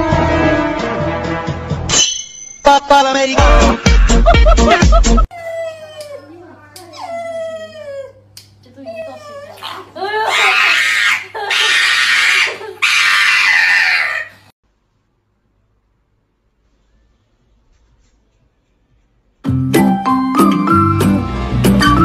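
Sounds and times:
loud human laughter: 0:03.6 - 0:05.3, 0:10.0 - 0:14.2.

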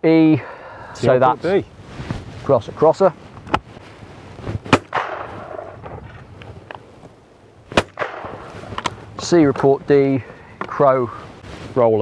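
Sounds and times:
shotgun shots with echo: 0:04.7 - 0:05.8, 0:07.7 - 0:08.5.

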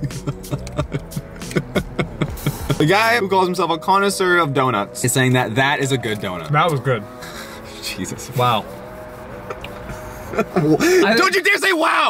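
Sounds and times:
men laughing: 0:00.0 - 0:03.2, 0:07.0 - 0:11.3.

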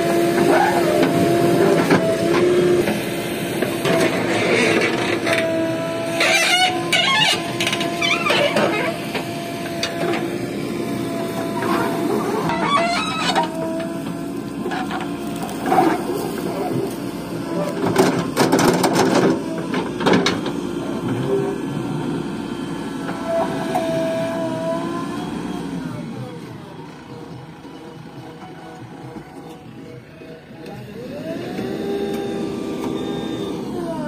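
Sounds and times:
backhoe engine and hydraulics whine: 0:00.0 - 0:34.0.

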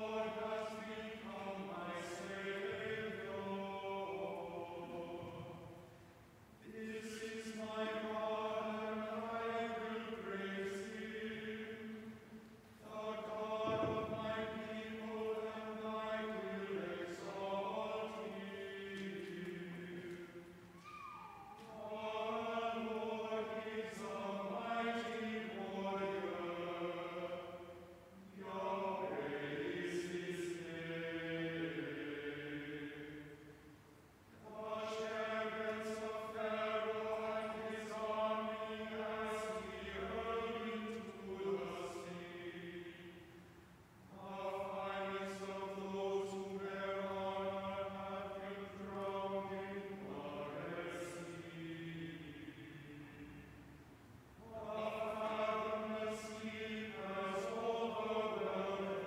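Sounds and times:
choir chanting unaccompanied: 0:00.0 - 0:06.0, 0:06.6 - 0:33.6, 0:34.4 - 0:53.8, 0:54.4 - 0:59.0.

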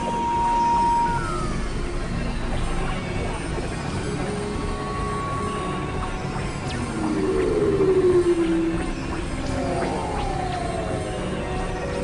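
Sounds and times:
hissy electronic drone: 0:00.0 - 0:12.0
synthesizer tone sliding downward: 0:06.6 - 0:12.0.

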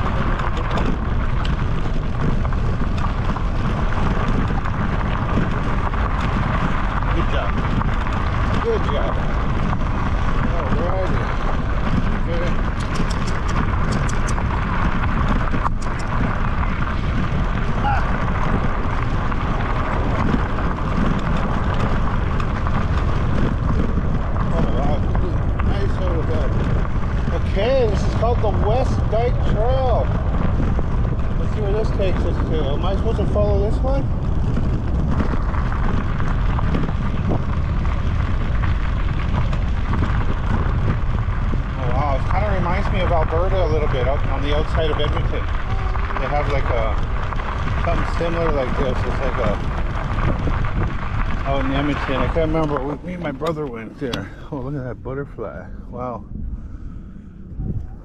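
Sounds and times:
tyres rumbling on gravel: 0:00.0 - 0:57.8
wind on microphone: 0:00.0 - 0:58.0.

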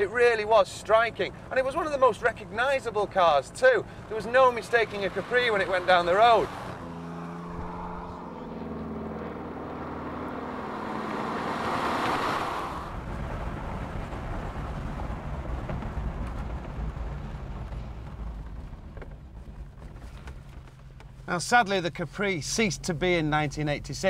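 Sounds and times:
road noise rumble: 0:00.0 - 0:24.0
car engine passing: 0:03.4 - 0:15.3.

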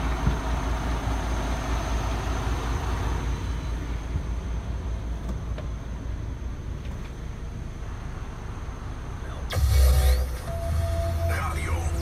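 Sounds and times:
truck rumble: 0:00.0 - 0:12.0.

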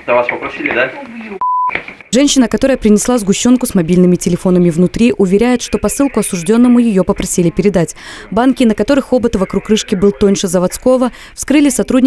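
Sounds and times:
person speaking: 0:02.2 - 0:12.0.

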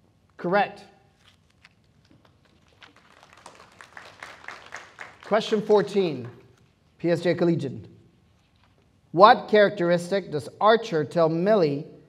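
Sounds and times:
hand claps: 0:02.7 - 0:06.4.

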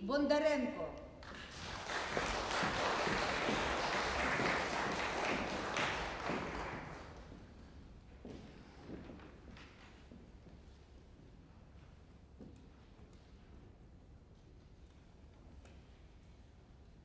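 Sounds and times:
audience applause: 0:01.2 - 0:07.4.

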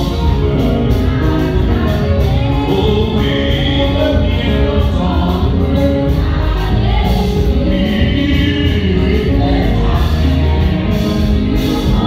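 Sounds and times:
amplified accompaniment with heavy bass: 0:00.0 - 0:12.0
congregation singing: 0:00.0 - 0:12.0.

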